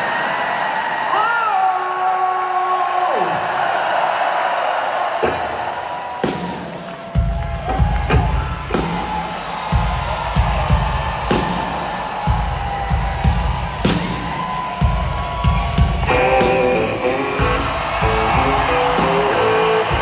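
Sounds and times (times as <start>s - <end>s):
rock band drum and bass beat: 6.2s - 20.0s.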